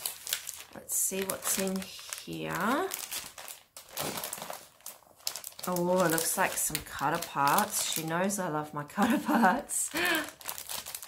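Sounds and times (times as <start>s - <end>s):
plastic and paper crinkling: 0.0s - 11.0s.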